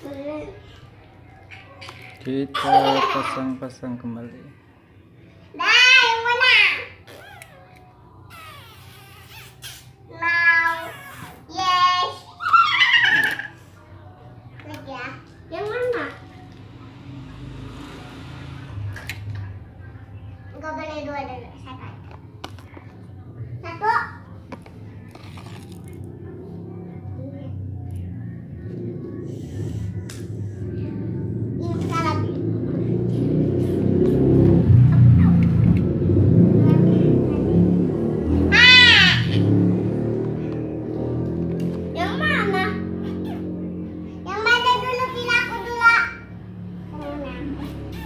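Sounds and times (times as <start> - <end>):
children's voices and shouts: 5.5 - 7.0, 10.1 - 16.3, 38.4 - 39.8, 41.8 - 43.5, 44.1 - 48.0
low rumbling hum: 16.1 - 48.0.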